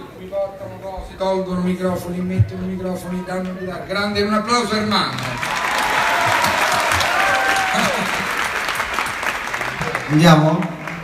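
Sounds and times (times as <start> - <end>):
audience applauding: 5.0 - 11.0.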